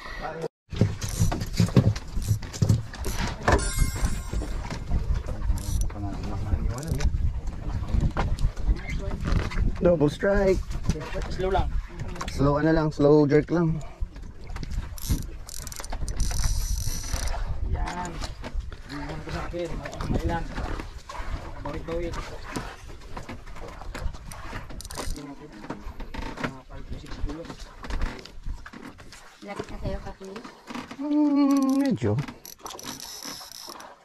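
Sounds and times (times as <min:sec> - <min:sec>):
wind buffeting on microphone: 0:00.9 - 0:13.0, 0:13.6 - 0:22.3.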